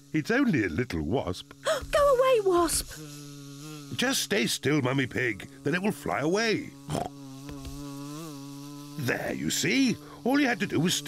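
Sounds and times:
cartoon wasp buzzing: 0.0 - 11.0.

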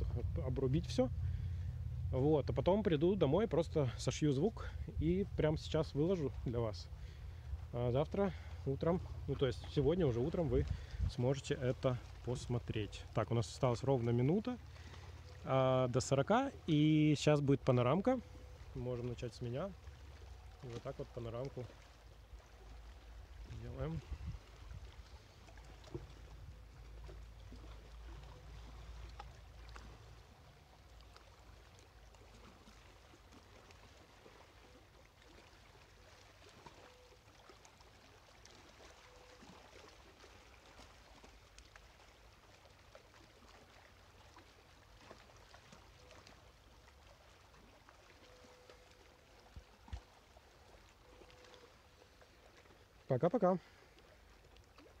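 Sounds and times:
low rumble: 0.0 - 12.7.

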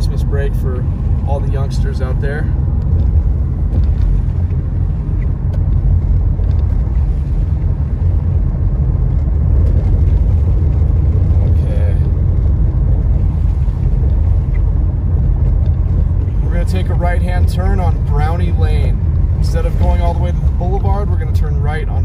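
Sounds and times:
car road and engine rumble: 0.0 - 22.0.

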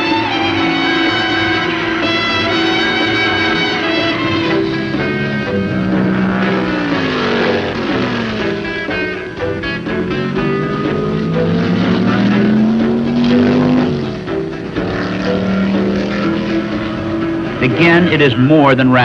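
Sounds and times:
music: 0.0 - 19.0
racing car engines passing: 0.0 - 19.0.

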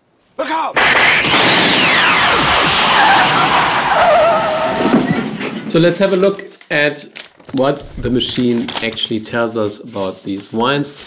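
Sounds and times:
car tyres squealing: 0.8 - 5.8.

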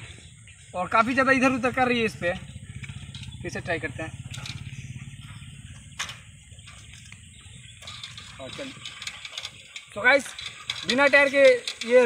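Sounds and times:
bare bicycle rims rattling on bricks: 0.7 - 12.0.

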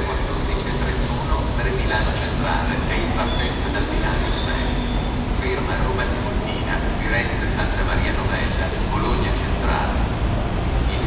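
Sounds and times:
electric locomotive rumbling: 0.0 - 11.0.

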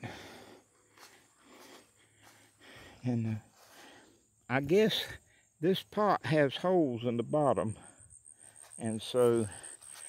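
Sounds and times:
man breathing out: 0.0 - 3.0.

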